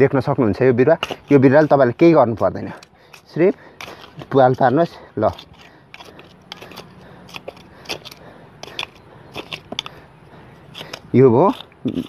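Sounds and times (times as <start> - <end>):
hand sickle scraping soil: 0.5 - 12.0.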